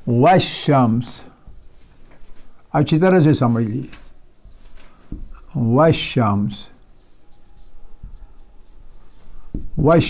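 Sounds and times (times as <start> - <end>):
man talking: 0.0 - 1.4, 2.7 - 4.0, 5.5 - 6.8, 9.8 - 10.0
marker pen scratching on whiteboard: 1.4 - 10.0.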